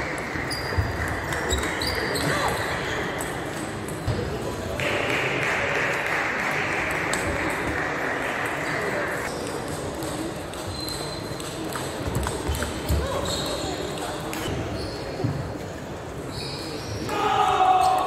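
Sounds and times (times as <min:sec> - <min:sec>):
murmur of voices: 0:00.0 - 0:18.0.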